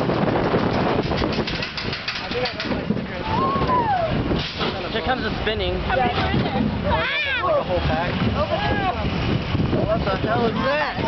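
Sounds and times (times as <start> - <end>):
rapid clicks and rattles: 0.0 - 3.1
roller coaster car on track: 0.0 - 11.0.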